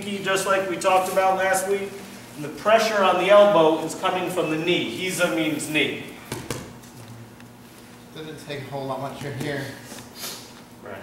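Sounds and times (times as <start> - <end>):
knocks on a mat: 6.3 - 6.8.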